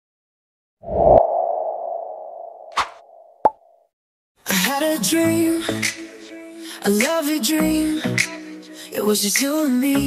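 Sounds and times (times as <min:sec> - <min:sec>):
brief swish: 0:00.8 - 0:03.3.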